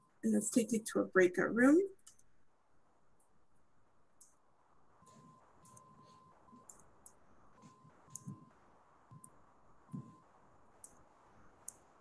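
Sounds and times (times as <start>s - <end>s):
computer mouse clicks: 2.0s - 2.3s, 4.2s - 4.4s, 5.1s - 8.5s, 10.8s - 11.0s, 11.6s - 11.9s.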